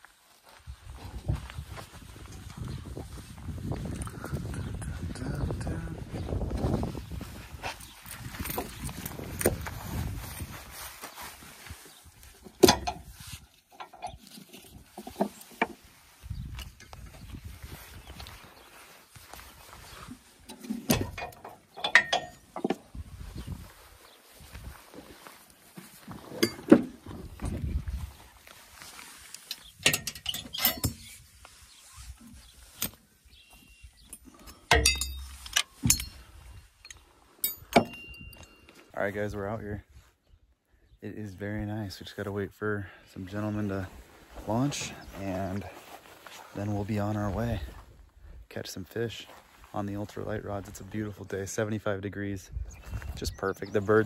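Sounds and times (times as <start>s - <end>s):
handling rustle: 6.6s - 38.9s, 43.8s - 48.1s
tie-down straps clicking and clinking: 7.7s - 9.7s, 12.5s - 15.8s, 29.3s - 31.2s, 33.7s - 38.9s.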